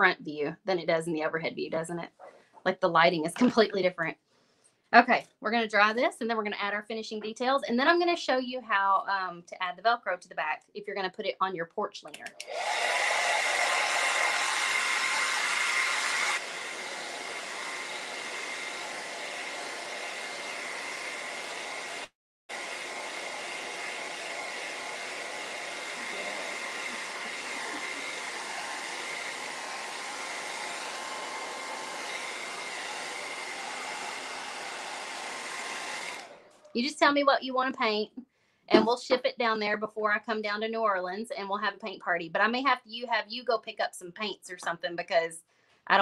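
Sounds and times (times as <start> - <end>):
hair dryer blowing: 12.4 - 36.6.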